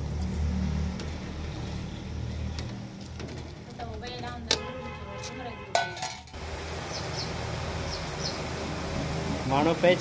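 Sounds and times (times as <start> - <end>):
low motor hum: 6.4 - 10.0.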